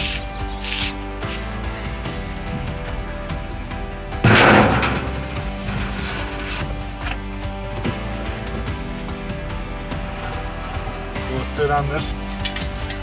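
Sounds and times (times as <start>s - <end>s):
background music: 0.0s - 13.0s
loud crashing thud: 4.2s - 5.6s.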